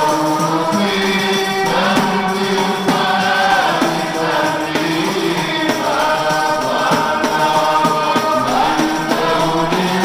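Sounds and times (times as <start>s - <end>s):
frame drums beating: 0.0s - 10.0s
men singing chant in chorus: 0.0s - 10.0s.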